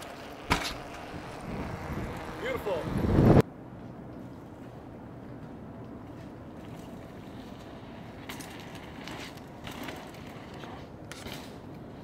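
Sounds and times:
low wind rumble on microphone: 0:00.8 - 0:03.5.

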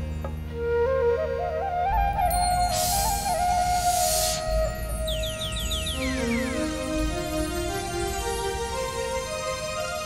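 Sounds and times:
flute: 0:00.3 - 0:10.0.

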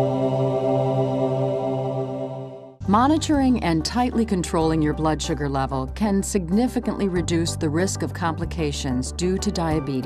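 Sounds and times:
held chord drone: 0:00.0 - 0:02.8.

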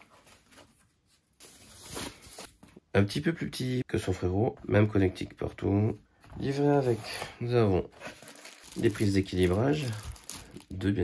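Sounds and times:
bubble wrap rustling: 0:08.0 - 0:10.9.

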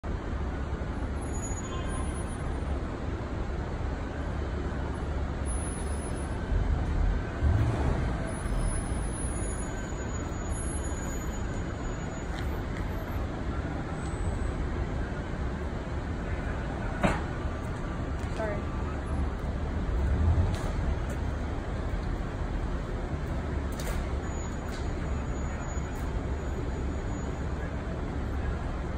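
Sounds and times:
road traffic rumble: 0:00.0 - 0:28.9.

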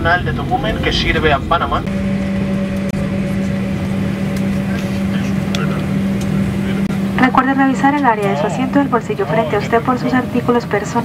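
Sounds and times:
jet engine and air noise: 0:00.0 - 0:11.0
low steady hum: 0:00.0 - 0:11.0.

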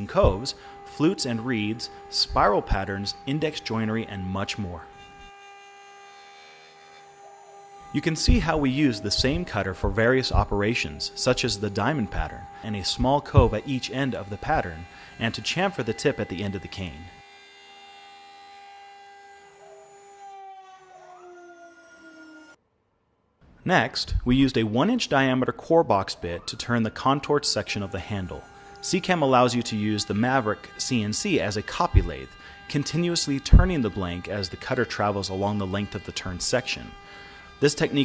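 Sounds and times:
router spindle whining: 0:00.0 - 0:22.6, 0:26.0 - 0:38.0.

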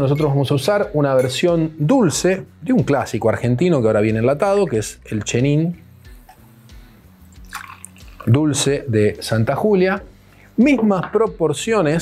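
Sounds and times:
wine trickling into a glass: 0:06.2 - 0:08.4.

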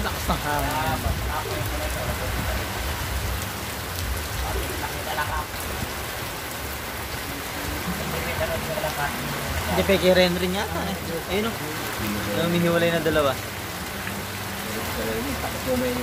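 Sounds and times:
steady rain falling: 0:00.0 - 0:16.0.

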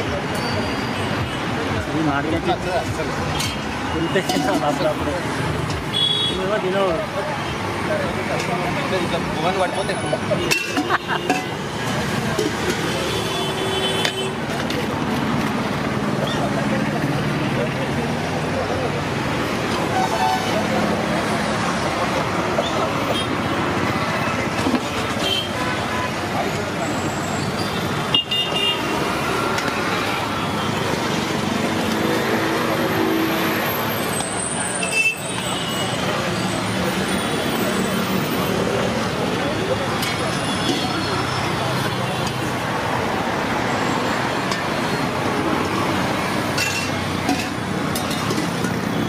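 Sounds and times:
people talking: 0:00.0 - 0:05.6, 0:06.2 - 0:15.2, 0:15.8 - 0:27.7, 0:32.1 - 0:43.9
road traffic: 0:00.0 - 0:49.0
vehicle horns tooting: 0:05.9 - 0:06.6, 0:12.8 - 0:14.4, 0:25.2 - 0:26.3, 0:26.9 - 0:29.4, 0:32.3 - 0:36.5.

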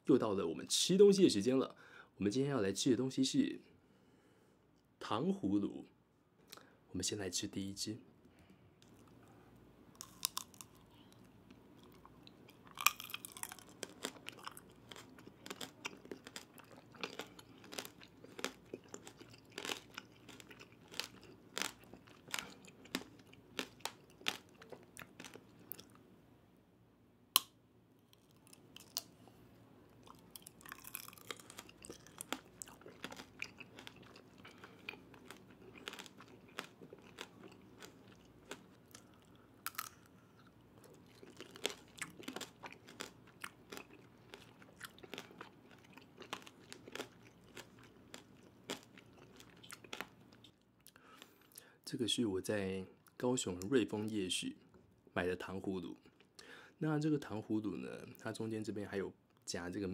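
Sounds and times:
hard candy crunching in mouth: 0:10.0 - 0:26.0, 0:27.4 - 0:29.2, 0:30.0 - 0:51.6
wet chewing of fruit: 0:11.8 - 0:26.0, 0:30.0 - 0:51.4.

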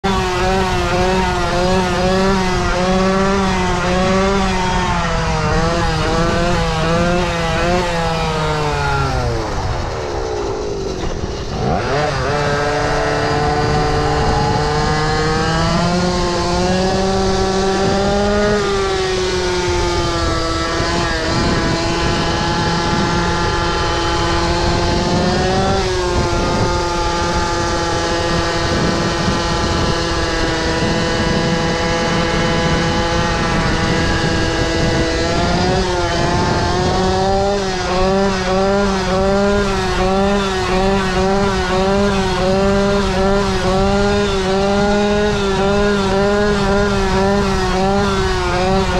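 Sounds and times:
small two-stroke scooter engine: 0:00.0 - 0:48.9.

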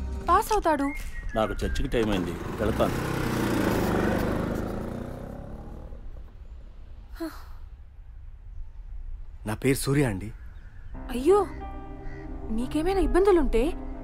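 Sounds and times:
motor scooter engine riding off: 0:02.0 - 0:06.2.

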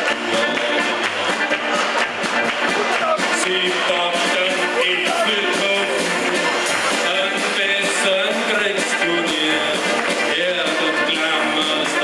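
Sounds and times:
bass drum and drum kit: 0:00.0 - 0:12.0
brass band playing: 0:00.0 - 0:12.0.

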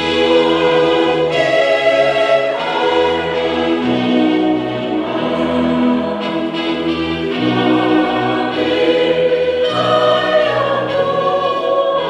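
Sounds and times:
choir singing held notes: 0:00.0 - 0:12.0
instrumental accompaniment: 0:00.0 - 0:12.0.

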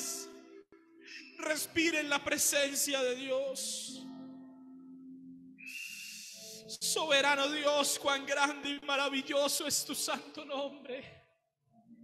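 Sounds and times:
person praying: 0:00.0 - 0:04.2, 0:06.0 - 0:11.4
electronic keyboard chord: 0:00.0 - 0:05.6
short hiss with high whistle: 0:05.6 - 0:06.7.

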